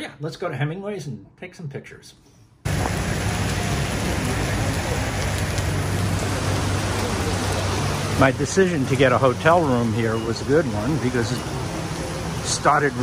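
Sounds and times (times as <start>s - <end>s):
heavy rain on pavement: 2.7s - 13.0s.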